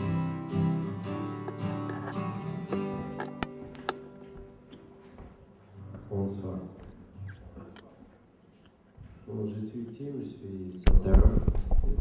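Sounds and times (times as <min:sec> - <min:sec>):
acoustic guitar notes ringing: 0:00.0 - 0:05.0.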